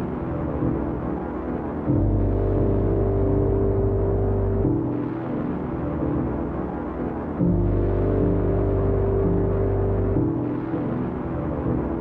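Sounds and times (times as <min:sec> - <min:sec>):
dark ambient drone music: 0:00.0 - 0:12.0.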